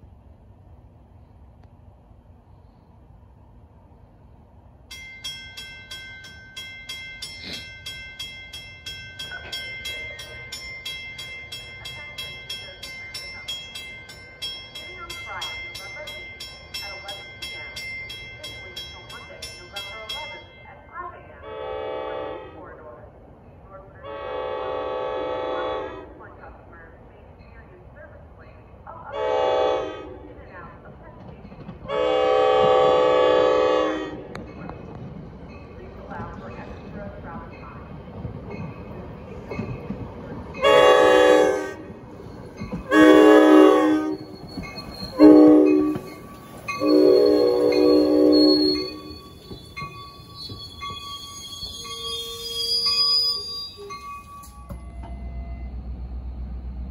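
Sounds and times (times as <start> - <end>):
crossing bell ringing: 4.8 - 22.1, 32.0 - 56.9
train horn blasts: 21.4 - 22.7, 24.0 - 26.1, 29.1 - 30.2, 31.9 - 34.4, 40.6 - 41.8, 42.9 - 44.3, 45.1 - 46.2, 46.8 - 49.2.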